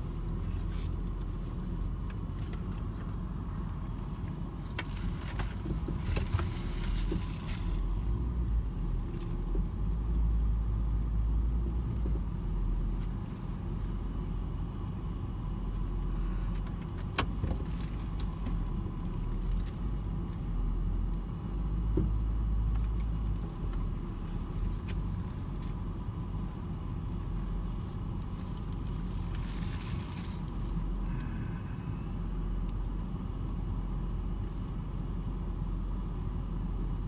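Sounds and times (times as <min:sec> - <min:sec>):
car engine and tyres rumbling: 0:00.0 - 0:37.0.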